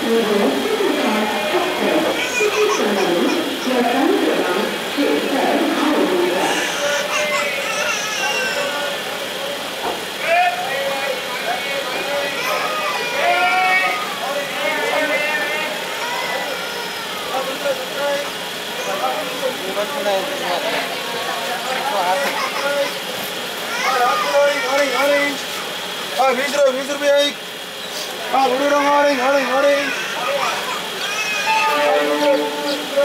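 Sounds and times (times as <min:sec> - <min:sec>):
indistinct voices: 0:00.0 - 0:33.0
train running slowly: 0:00.0 - 0:33.0
person singing: 0:31.5 - 0:33.0.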